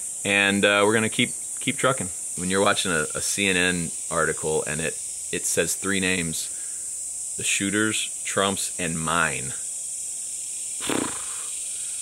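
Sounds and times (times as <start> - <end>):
high-pitched insect droning: 0.0 - 12.0.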